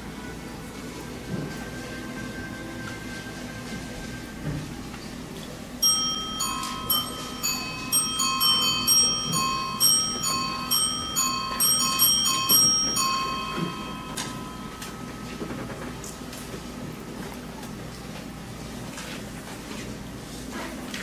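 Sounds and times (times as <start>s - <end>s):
bell chimes ringing: 1.3s - 4.8s, 5.8s - 16.9s.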